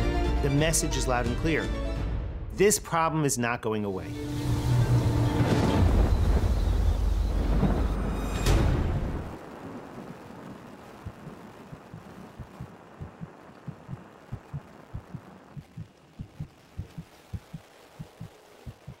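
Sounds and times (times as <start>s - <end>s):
music: 0.0s - 2.9s, 3.9s - 9.3s
heartbeat thumps: 11.0s - 19.0s.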